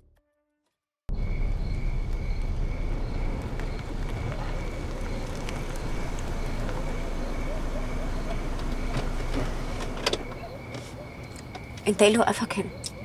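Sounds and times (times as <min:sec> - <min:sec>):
car engine running low: 0:01.1 - 0:11.8
tyres rolling: 0:01.4 - 0:12.2.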